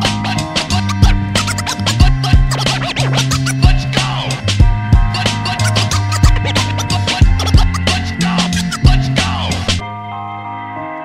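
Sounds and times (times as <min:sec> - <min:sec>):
hip-hop beat: 0:00.0 - 0:09.8
turntable scratching: 0:00.0 - 0:09.8.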